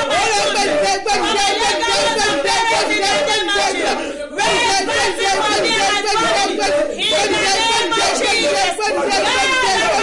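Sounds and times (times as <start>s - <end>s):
woman praying rapidly: 0.0s - 10.0s.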